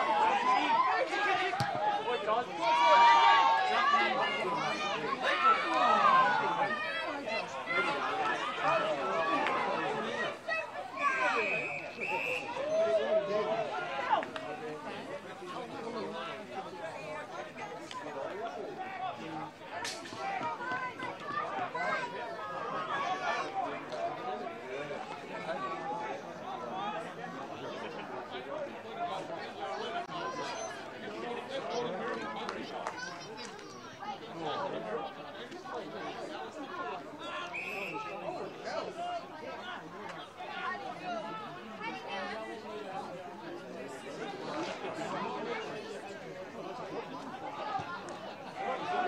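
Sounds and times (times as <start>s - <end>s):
voices calling out: 0.0s - 15.2s, 35.8s - 42.0s
voices chattering and calling out: 0.0s - 49.0s.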